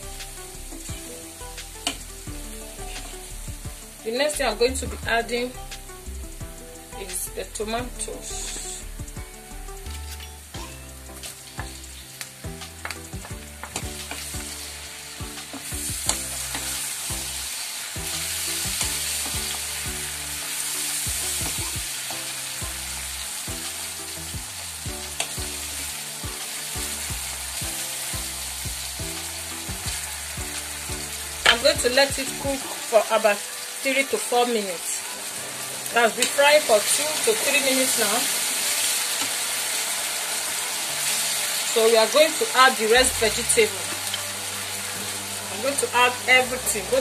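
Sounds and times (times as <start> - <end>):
vegetables sizzling in oil: 0.0 - 47.0.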